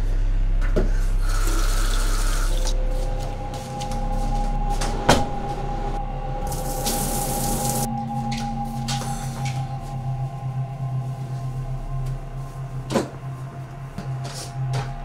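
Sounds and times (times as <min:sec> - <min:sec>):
low steady hum: 0:00.0 - 0:15.0
water running from tap: 0:01.3 - 0:02.7, 0:06.6 - 0:07.9.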